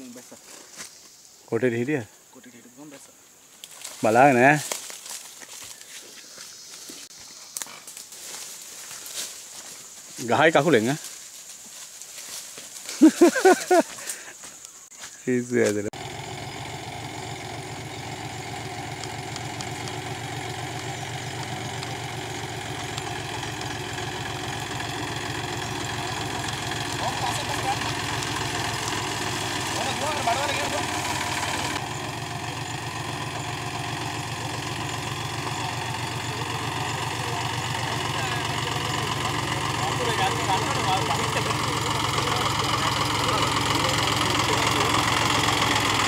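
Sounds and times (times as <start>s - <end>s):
tractor engine running: 15.7s - 46.0s.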